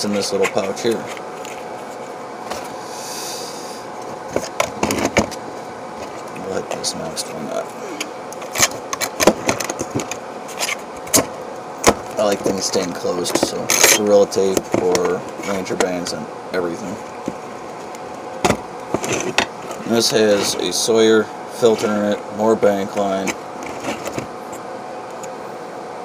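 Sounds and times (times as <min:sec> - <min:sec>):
person speaking: 0:00.0 - 0:01.2, 0:06.2 - 0:08.2, 0:12.1 - 0:17.1, 0:19.7 - 0:23.4.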